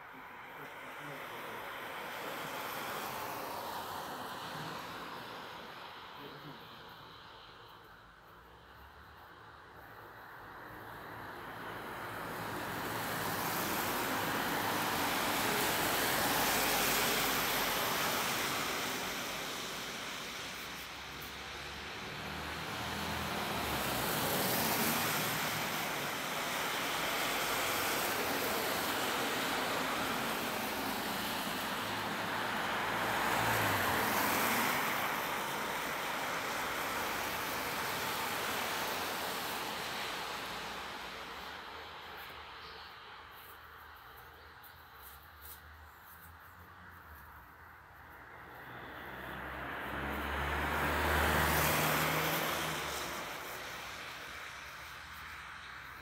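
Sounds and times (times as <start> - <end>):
cars passing on wet road: 0.0 - 56.0.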